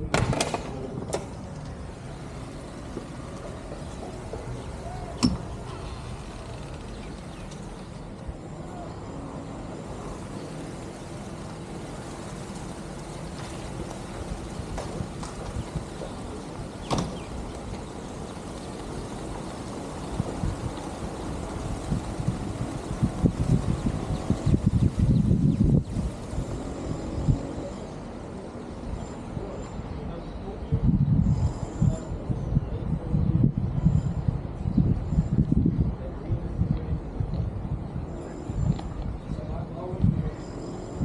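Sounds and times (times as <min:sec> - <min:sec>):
wind buffeting microphone: 0:00.0 - 0:41.0
low steady rumble: 0:00.8 - 0:40.5.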